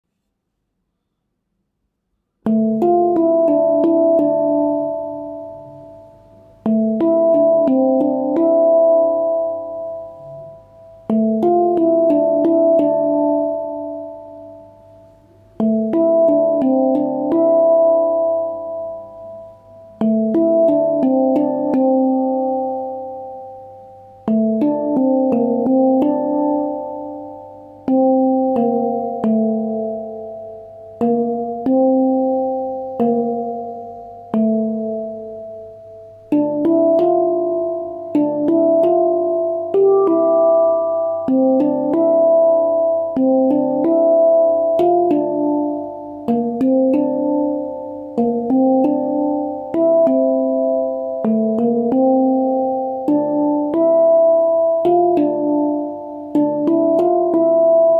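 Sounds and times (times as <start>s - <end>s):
handpan notes ringing: 2.4s - 57.9s.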